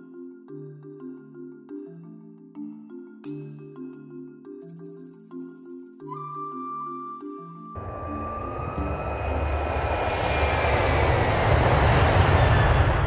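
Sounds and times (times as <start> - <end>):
soft mallet melody music: 0.0 - 7.8
airplane flyover: 7.8 - 13.0.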